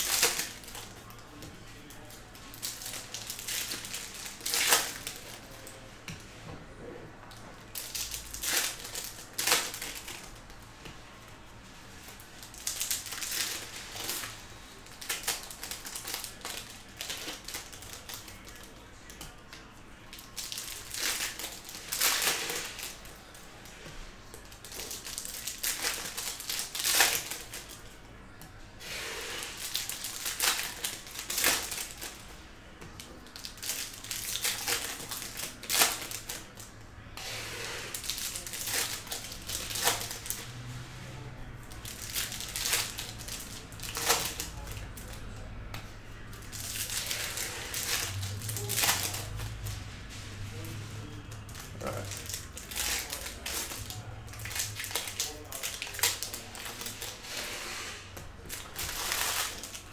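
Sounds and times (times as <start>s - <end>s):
foil card packs crinkling: 7.7s - 10.6s, 12.2s - 19.2s, 20.1s - 23.3s, 24.3s - 27.9s, 28.9s - 32.2s, 33.0s - 40.7s, 41.7s - 45.3s, 46.3s - 49.8s, 50.4s - 59.9s.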